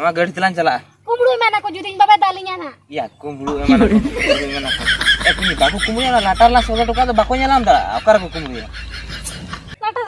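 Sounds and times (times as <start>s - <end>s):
person talking: 3.5s - 8.6s
person snickering with laughter: 8.0s - 9.7s.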